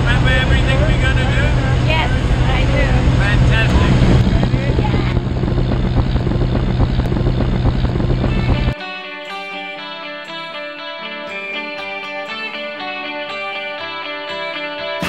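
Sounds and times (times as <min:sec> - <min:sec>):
propeller engine droning: 0:00.0 - 0:08.8
voices: 0:00.0 - 0:08.8.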